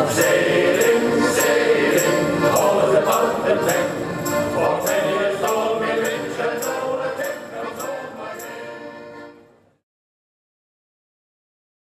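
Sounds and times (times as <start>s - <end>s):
choir singing a sea shanty: 0.0s - 9.5s
instrumental accompaniment: 0.0s - 9.8s.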